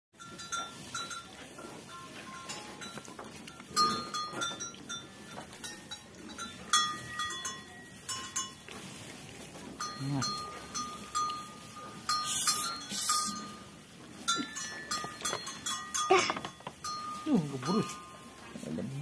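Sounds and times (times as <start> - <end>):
cow bell clinking: 0.2 - 19.0.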